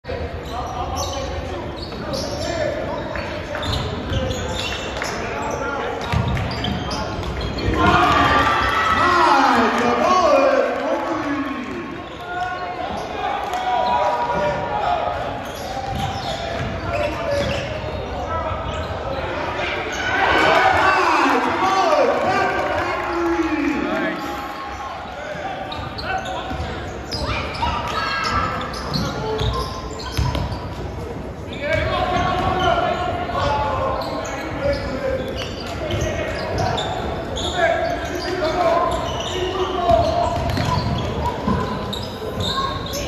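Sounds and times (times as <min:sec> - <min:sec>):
voices calling and shouting: 0:00.2 - 0:43.0.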